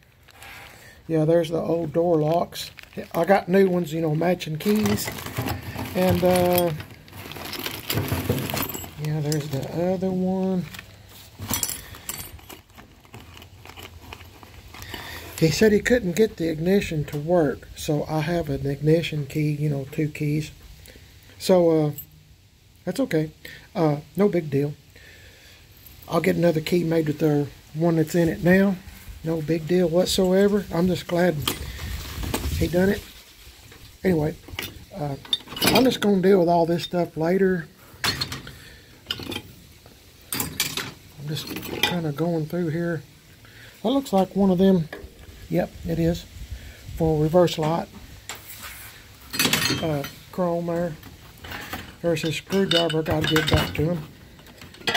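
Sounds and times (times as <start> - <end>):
rummaging in cardboard box: 2.7 - 15.3
metal parts clanking: 4.6 - 9.8, 11.4 - 15.4, 34.5 - 36.1, 38.0 - 39.6, 40.3 - 42.1, 49.3 - 50.2, 51.4 - 54.9
metal on metal clatter: 40.3 - 42.2, 49.3 - 50.4, 51.1 - 54.9.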